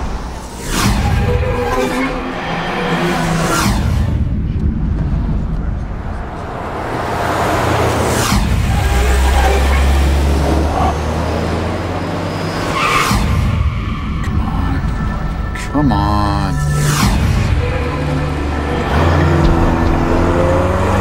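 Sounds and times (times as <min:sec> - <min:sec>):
low engine rumble: 0:04.0 - 0:10.5
cars passing by: 0:05.0 - 0:14.3, 0:16.8 - 0:21.0.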